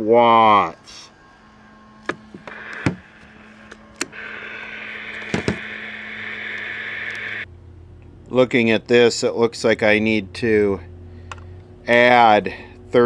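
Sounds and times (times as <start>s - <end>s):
low electrical hum: 0.0s - 13.0s
sharp clicks and knocks: 5.2s - 5.6s.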